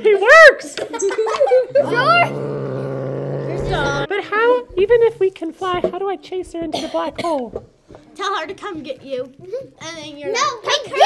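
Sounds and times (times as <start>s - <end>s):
person growling low buzz: 1.8s - 4.1s.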